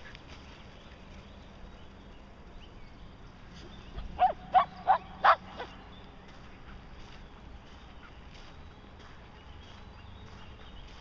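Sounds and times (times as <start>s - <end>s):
dog barking: 4.2s - 5.7s.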